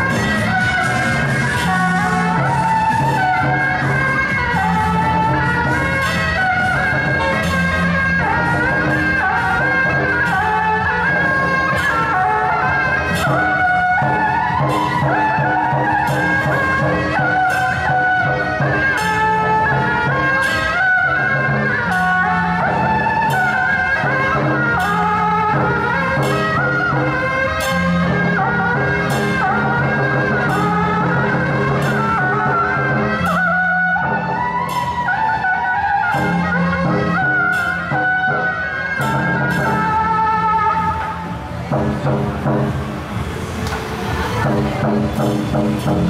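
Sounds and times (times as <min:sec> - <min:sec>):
drums and percussion: 0:00.0 - 0:46.0
piercing wind-instrument melody: 0:00.0 - 0:46.0.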